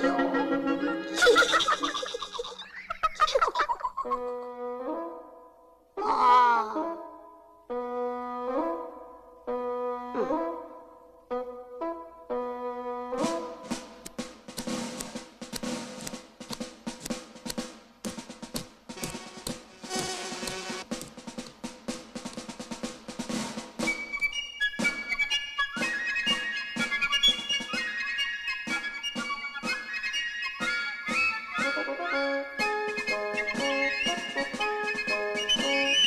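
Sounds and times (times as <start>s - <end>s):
high stepped melody: 13.1s - 22.5s
busy fast drumming: 13.2s - 24.1s.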